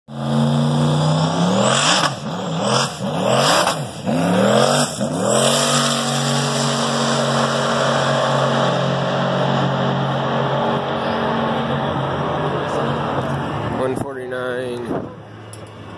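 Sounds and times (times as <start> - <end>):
race car accelerating: 0.1 - 14.0.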